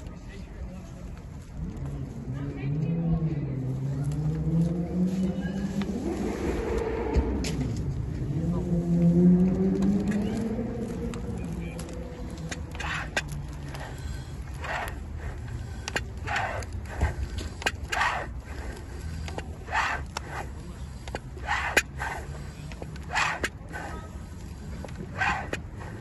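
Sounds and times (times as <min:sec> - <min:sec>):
floor pump air whooshes: 0:04.6 - 0:26.0.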